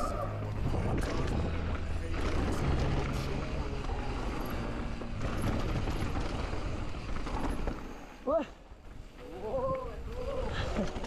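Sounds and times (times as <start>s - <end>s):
wind buffeting microphone: 0.0s - 3.4s.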